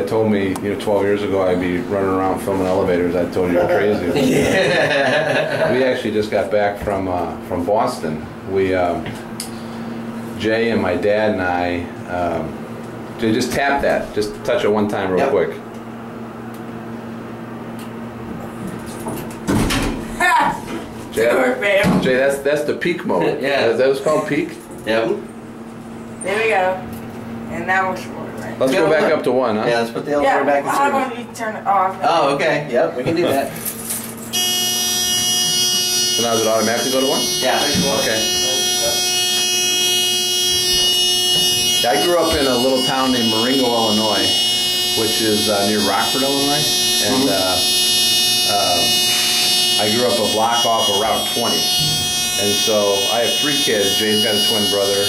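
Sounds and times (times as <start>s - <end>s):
steady hum: 0.0s - 55.0s
electric buzzer: 34.1s - 55.0s.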